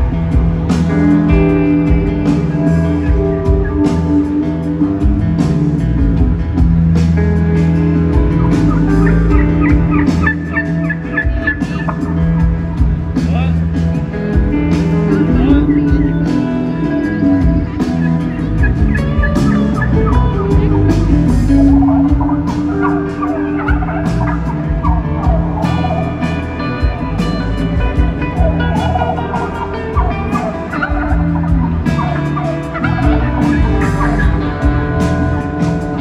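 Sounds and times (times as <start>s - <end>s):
country band low chord: 0.0s - 36.0s
warbled turkey gobble imitation: 8.4s - 12.2s, 18.6s - 26.4s, 28.5s - 34.4s.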